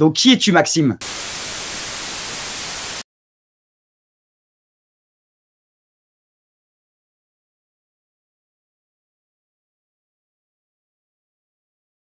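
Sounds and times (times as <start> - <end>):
television static hiss: 1.0 - 3.0.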